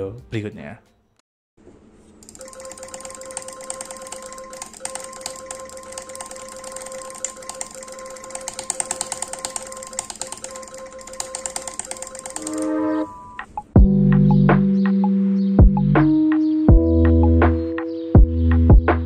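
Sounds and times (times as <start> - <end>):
background music: 2.5 - 19.0
rapid mouse button clicking: 2.9 - 12.7.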